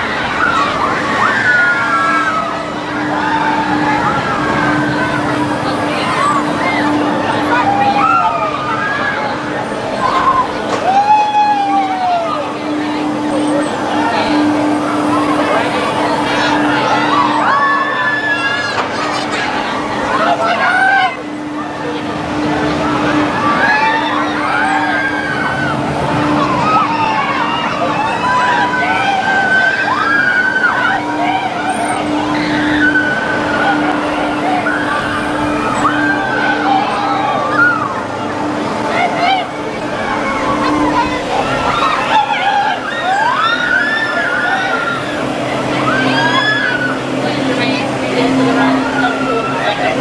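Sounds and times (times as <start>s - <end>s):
person yelling on ride: 0.0s - 50.0s
ride machinery humming: 0.0s - 50.0s.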